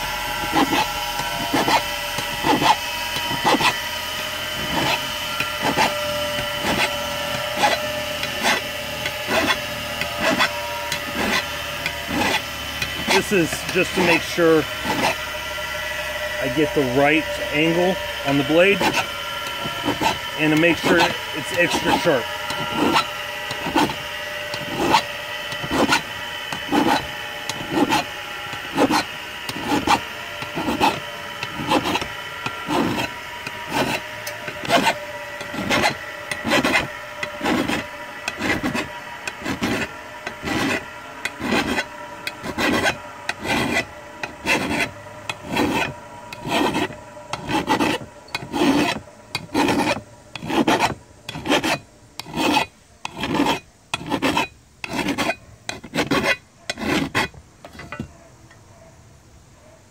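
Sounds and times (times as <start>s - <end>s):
file scraping steel blade: 0.0s - 58.3s.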